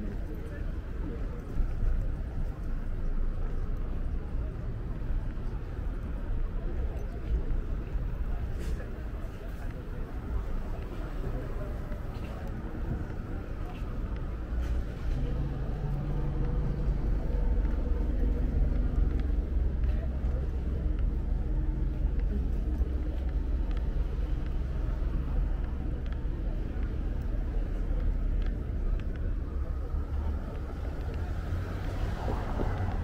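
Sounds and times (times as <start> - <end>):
indistinct voices: 0.0 - 33.0
passing car traffic rumble: 0.0 - 33.0.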